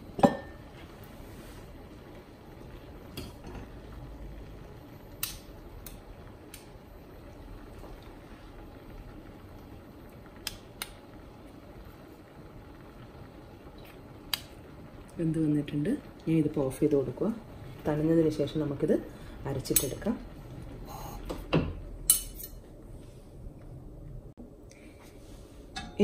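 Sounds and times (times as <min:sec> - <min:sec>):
gas burner hissing: 0:00.0 - 0:26.0
pot simmering: 0:00.0 - 0:26.0
steel spoon clinking on pot: 0:22.1 - 0:22.6, 0:25.8 - 0:26.0.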